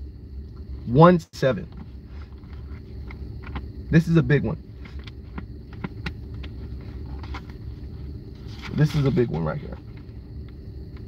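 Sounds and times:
low rumble: 0.0 - 11.0.

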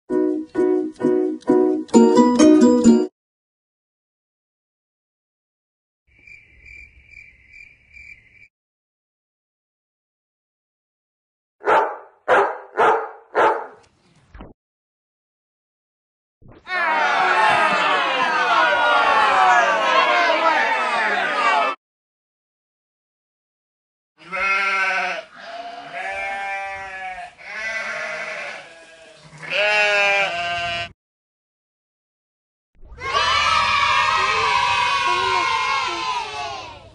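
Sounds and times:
dog barking: 11.6 - 13.8
wavering bleat-like cries: 20.2 - 21.8, 24.2 - 30.9.

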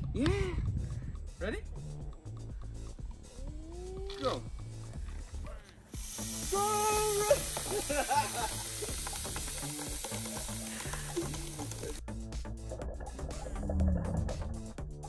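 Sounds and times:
background music with a beat: 0.0 - 15.0
soda geyser hissing: 5.9 - 12.0.

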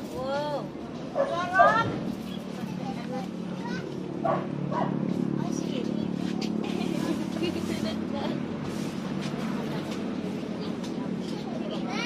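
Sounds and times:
children chattering: 0.0 - 12.0
dog barking: 4.2 - 5.0.

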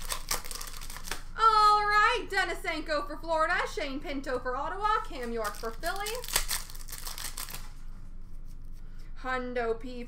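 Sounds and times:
cards rustling: 0.0 - 1.3, 5.1 - 8.6
faint low hum: 0.0 - 10.0.

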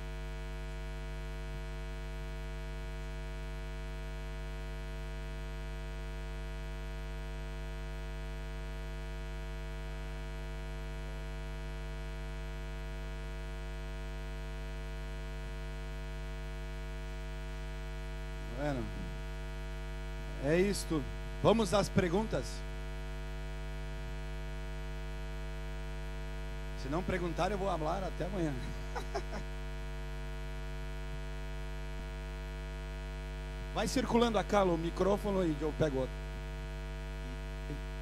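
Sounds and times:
electrical mains hum: 0.0 - 38.0
person speaking: 26.8 - 29.4.

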